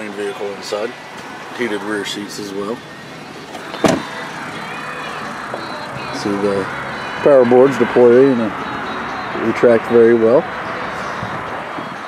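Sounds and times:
truck door shutting with a thud: 3.5 - 4.2.

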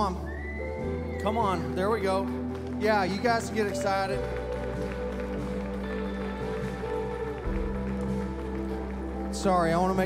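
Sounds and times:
sustained keyboard chords: 0.0 - 10.0.

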